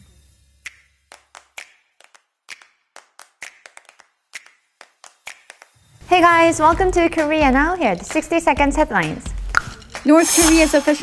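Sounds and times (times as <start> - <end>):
low music bed: 5.8 - 11.0.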